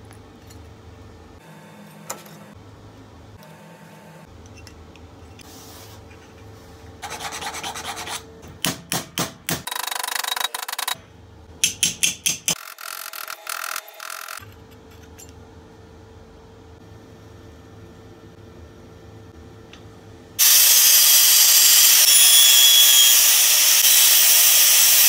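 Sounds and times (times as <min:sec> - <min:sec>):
hammer tapping sheet metal: 0:11.6 - 0:12.6.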